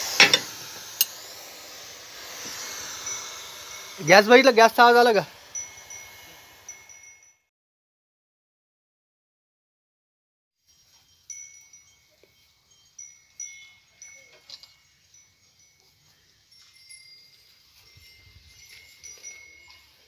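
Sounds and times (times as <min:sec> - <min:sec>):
high ringing chimes: 0:00.2 - 0:07.5, 0:10.6 - 0:20.0.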